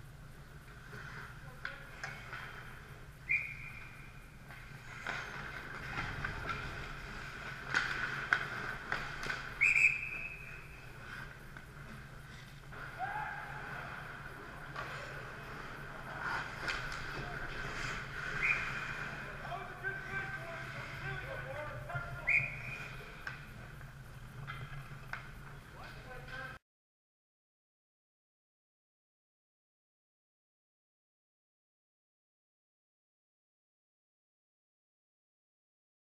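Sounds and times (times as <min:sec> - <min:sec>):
rink background hum: 0:00.0 - 0:26.6
referee's whistle blast: 0:03.3 - 0:03.9, 0:09.6 - 0:10.8, 0:18.4 - 0:18.8, 0:22.1 - 0:23.0
hockey sticks clacking on puck: 0:03.4 - 0:23.5.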